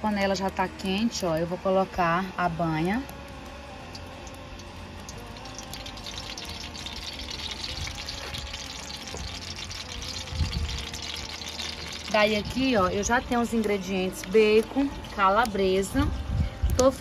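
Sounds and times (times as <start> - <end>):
lard sizzling in a hot pan: 0.0 - 17.0.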